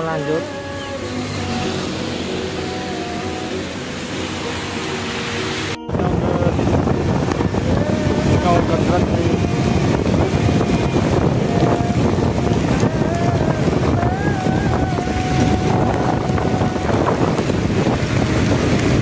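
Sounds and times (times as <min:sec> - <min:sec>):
heavy rain: 0:00.0 - 0:19.0
traffic: 0:00.0 - 0:19.0
wet tyres road noise: 0:00.0 - 0:19.0
wind buffeting microphone: 0:00.0 - 0:19.0.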